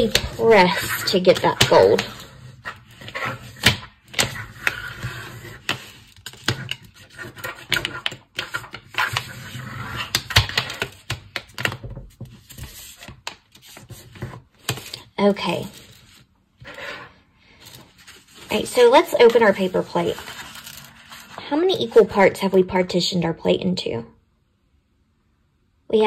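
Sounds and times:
pencil scraping paper: 0.0s - 10.4s, 12.4s - 22.3s.

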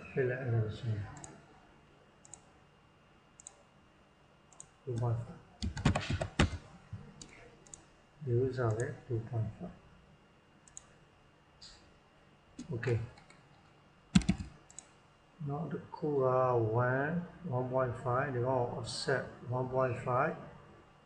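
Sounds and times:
computer mouse clicks: 2.2s - 2.5s, 3.4s - 3.6s, 7.2s - 7.9s, 10.6s - 10.9s, 12.6s - 13.6s, 14.2s - 15.0s.

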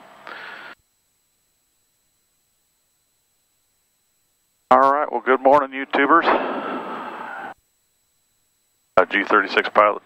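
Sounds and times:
intercom hiss burst: 6.0s - 7.6s.

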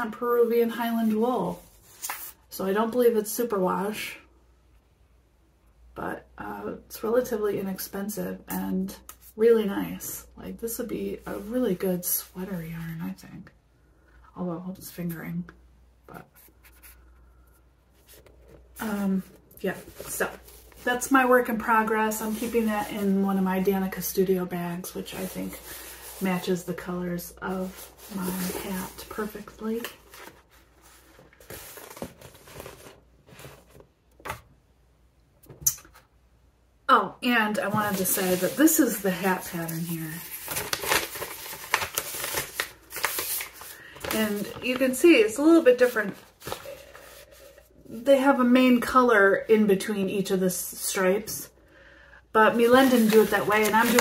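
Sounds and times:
paper crinkling: 18.0s - 23.2s, 27.5s - 34.4s, 37.7s - 45.0s, 45.7s - 47.6s, 52.5s - 54.0s
yarn ball rustling: 52.5s - 54.0s.

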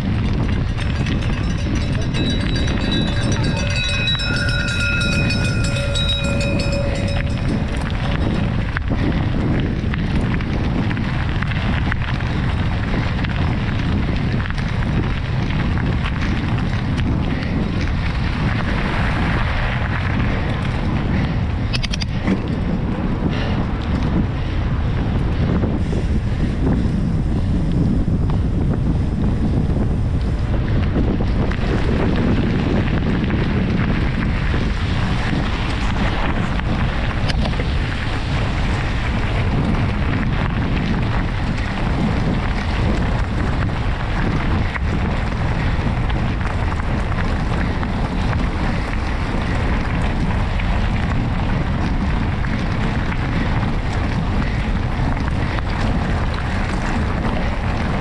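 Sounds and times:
bike tyres rolling: 0.0s - 58.0s
wind rushing over microphone: 0.0s - 58.0s.

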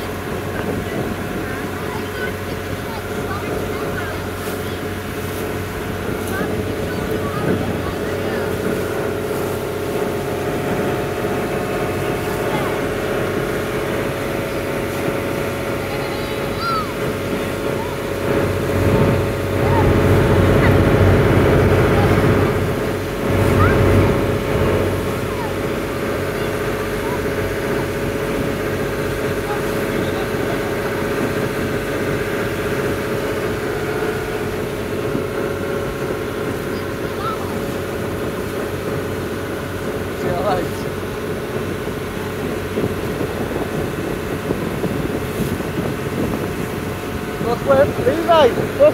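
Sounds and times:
boat engine droning: 0.0s - 48.9s
water wash: 0.0s - 48.9s.

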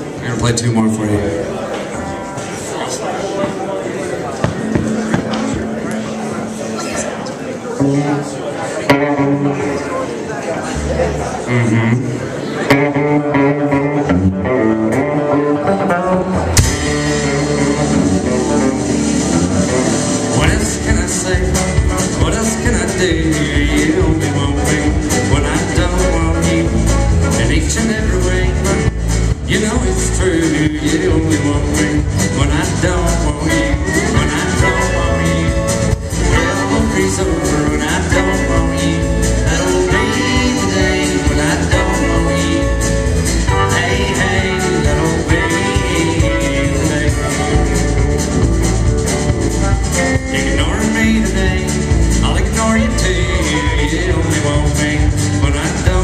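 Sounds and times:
country band playing live: 0.0s - 56.0s
drums striking steady beat: 4.4s - 5.9s, 16.5s - 56.0s.

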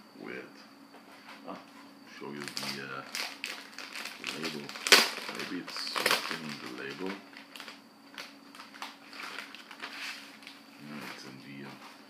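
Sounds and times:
record sleeve crinkling: 2.4s - 11.3s.

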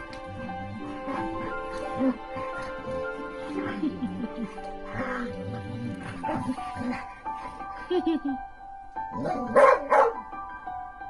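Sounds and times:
dogs play-fighting: 0.0s - 7.8s
background music: 0.0s - 11.0s.

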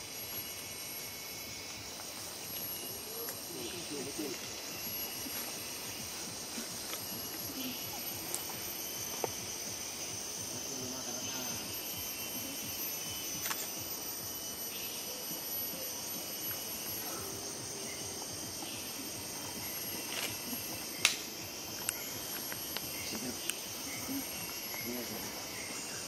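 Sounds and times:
insects droning: 0.0s - 26.0s.

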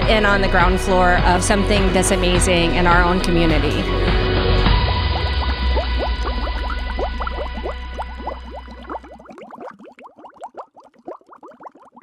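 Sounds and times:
music chords and bass: 0.0s - 9.0s
bubbly blips: 2.9s - 12.0s.

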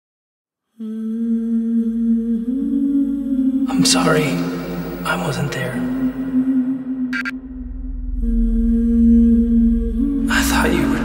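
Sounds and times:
person humming low note: 0.8s - 11.0s
faint low rumble: 5.9s - 11.0s.

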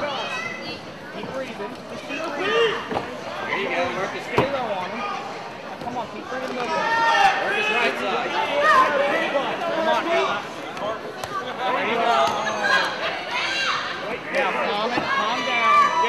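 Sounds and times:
crowd yelling and shouting: 1.9s - 5.6s, 6.2s - 16.0s.

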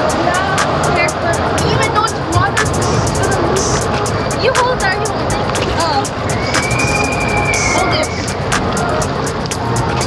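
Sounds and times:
music with quick steady beat: 0.0s - 10.0s.

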